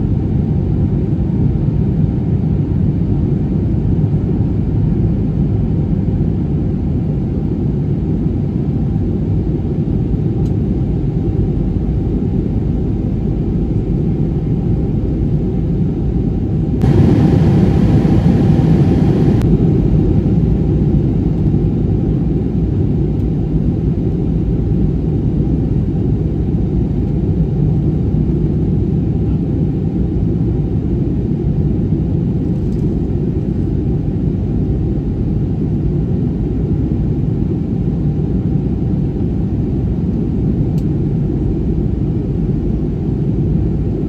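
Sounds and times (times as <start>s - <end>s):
airliner cabin engine rumble: 0.0s - 44.0s.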